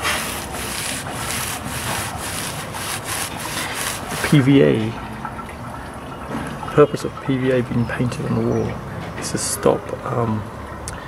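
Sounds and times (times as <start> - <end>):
brush scrubbing rough render: 0.0 - 4.7.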